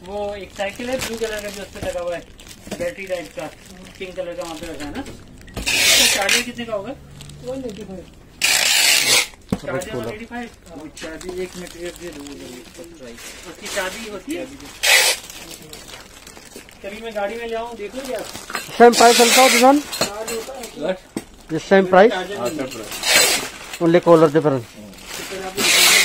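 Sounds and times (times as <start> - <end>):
rustling bursts: 0.4 - 19.9, 22.9 - 26.0.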